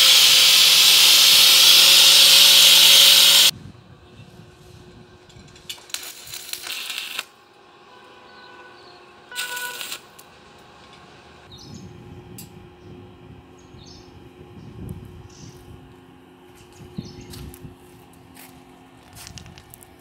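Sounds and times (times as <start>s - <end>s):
arc welding crackle: 0.0s - 3.5s, 5.6s - 7.4s, 9.3s - 10.3s, 17.4s - 20.0s.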